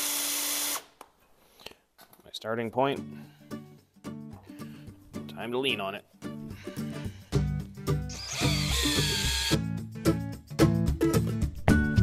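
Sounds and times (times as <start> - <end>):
background music: 2.4 - 12.0
drill bit whining through steel: 8.1 - 9.6.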